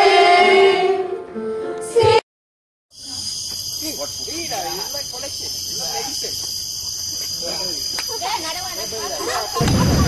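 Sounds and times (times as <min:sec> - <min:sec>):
insects chorus: 0:02.9 - 0:10.0
people talking: 0:03.8 - 0:06.4, 0:07.4 - 0:10.0.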